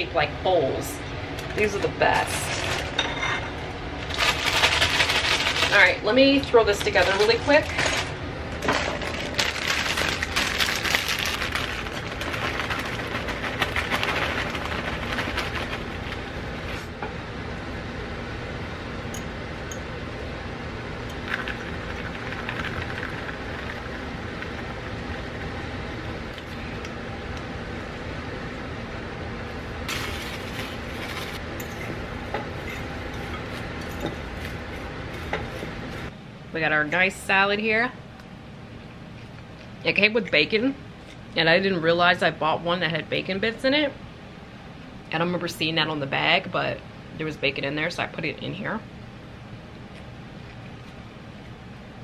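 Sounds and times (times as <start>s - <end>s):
air conditioner humming: 0.0s - 52.0s
plastic bag crinkling: 4.1s - 6.0s, 6.9s - 16.3s.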